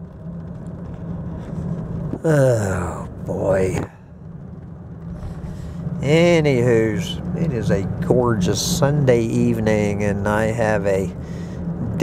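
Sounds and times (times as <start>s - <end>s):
car engine hum: 0.0s - 12.0s
tyre road noise: 0.0s - 12.0s.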